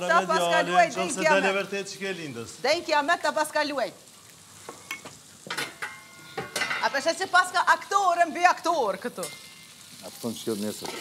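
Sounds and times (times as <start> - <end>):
food sizzling in a pan: 0.0 - 11.0
kitchenware clinks and knocks: 4.9 - 6.9.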